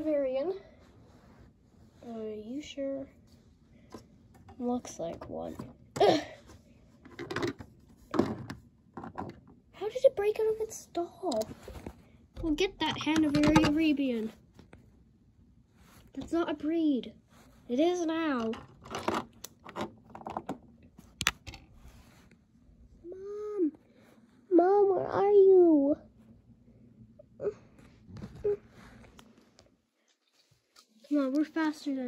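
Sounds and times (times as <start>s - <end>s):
plastic toy knocks and scrapes: 7.0s - 9.6s, 11.4s - 13.9s, 18.3s - 20.6s.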